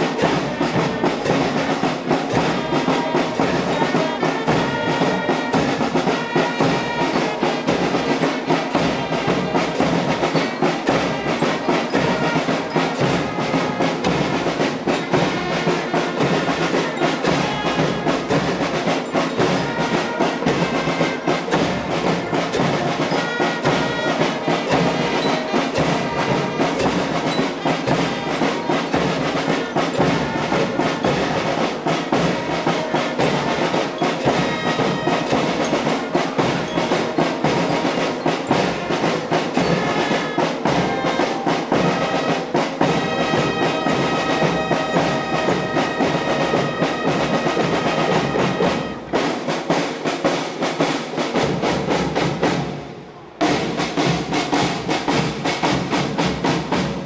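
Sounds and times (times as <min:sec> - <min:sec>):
brass playing tune: 0:00.0 - 0:49.4
snare and bass drumming: 0:00.0 - 0:57.0.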